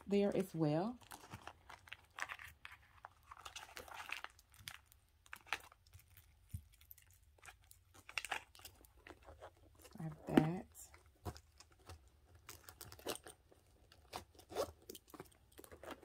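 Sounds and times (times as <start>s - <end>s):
rustling and crinkling of packets: 0.0s - 16.0s.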